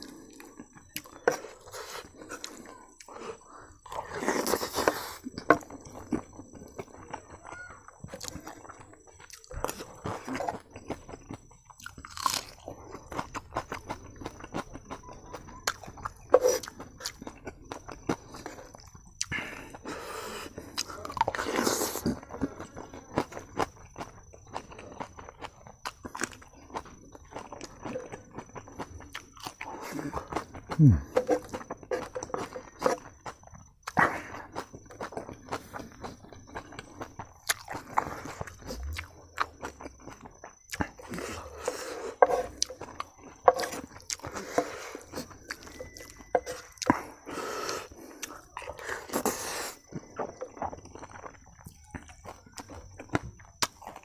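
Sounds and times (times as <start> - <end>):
chewing and crunching food: 0.0 - 54.0.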